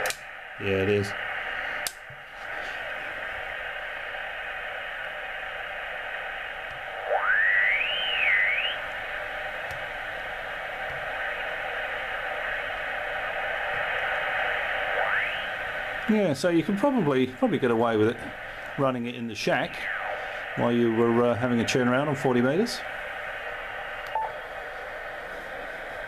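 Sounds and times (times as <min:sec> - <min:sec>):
radio receiver hissing: 0:00.0 - 0:26.0
rising whistle: 0:07.0 - 0:08.8, 0:15.0 - 0:15.6, 0:19.6 - 0:20.4.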